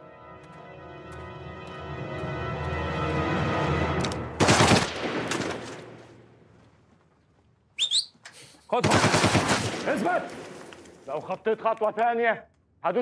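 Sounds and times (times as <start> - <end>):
gunfire bursts in tunnel: 4.3 - 6.1, 8.8 - 10.7.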